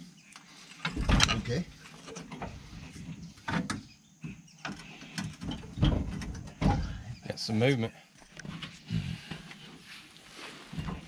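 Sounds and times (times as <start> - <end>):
metal clunks and rattling: 0.8 - 7.2.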